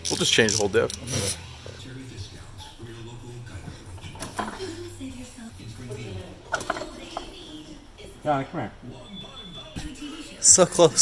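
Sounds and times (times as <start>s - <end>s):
low indistinct voices: 0.9s - 11.0s.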